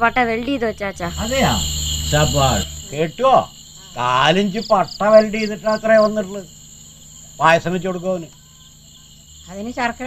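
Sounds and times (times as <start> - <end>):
crickets chirping: 0.0 - 10.0
man speaking: 1.2 - 6.5, 7.4 - 8.3.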